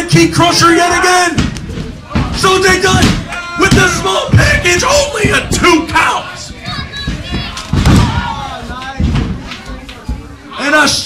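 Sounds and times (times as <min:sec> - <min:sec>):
heavy thuds on ring canvas: 0:01.3 - 0:05.9, 0:06.9 - 0:09.5.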